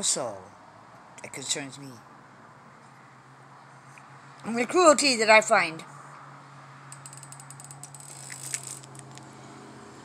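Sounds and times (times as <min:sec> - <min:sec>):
camera handling clicks and rustles: 0:07.0 - 0:09.3.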